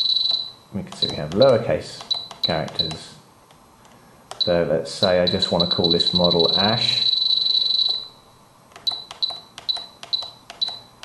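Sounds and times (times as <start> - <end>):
radio transmitter beeping: 5.2 - 8.1.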